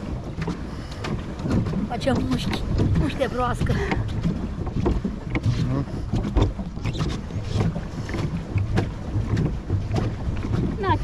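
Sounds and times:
paddle wheel churning water: 0.0 - 11.0
splashes and knocks: 0.0 - 11.0
wind buffeting microphone: 0.0 - 11.0.

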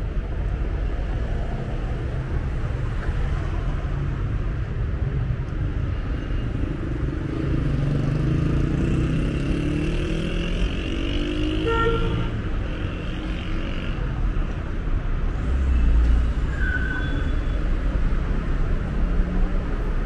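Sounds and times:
traffic rumble: 0.0 - 20.0.

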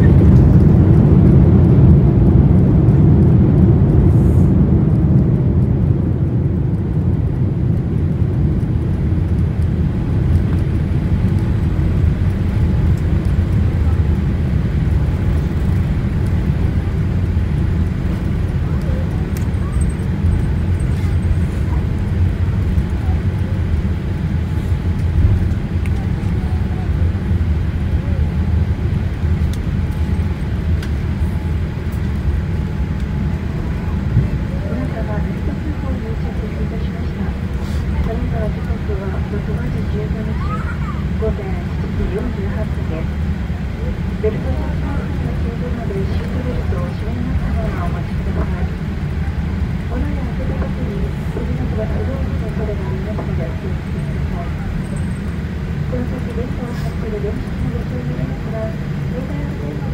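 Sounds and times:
airliner engines and wheels rumbling: 0.0 - 59.9.

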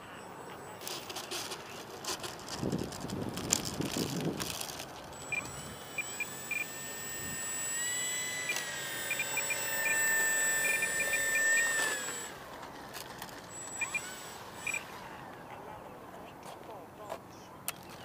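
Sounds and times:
rc plane motor whining: 0.2 - 15.5.

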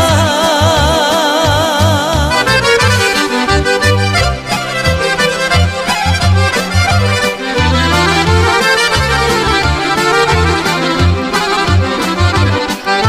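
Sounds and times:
accordion melody: 0.0 - 13.0
bass notes: 0.0 - 13.0
steady drum beat: 7.2 - 13.0.

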